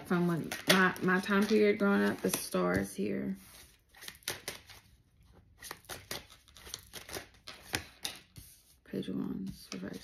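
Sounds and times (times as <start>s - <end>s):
cards flicking and snapping: 4.0s - 4.8s, 5.6s - 8.3s.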